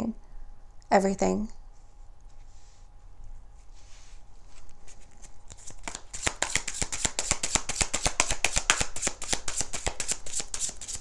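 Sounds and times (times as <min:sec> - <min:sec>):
cards being shuffled: 0:04.4 - 0:11.0.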